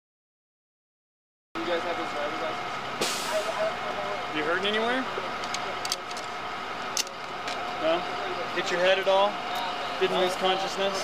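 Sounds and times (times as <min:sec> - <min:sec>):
indistinct voices talking: 0:01.6 - 0:11.0
steady background hum: 0:01.6 - 0:11.0.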